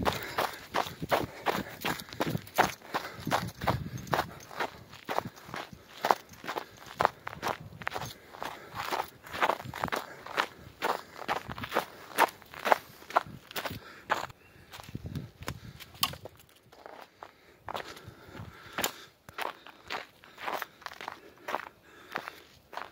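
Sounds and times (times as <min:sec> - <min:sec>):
footsteps on snow and leaves: 0:00.0 - 0:15.8.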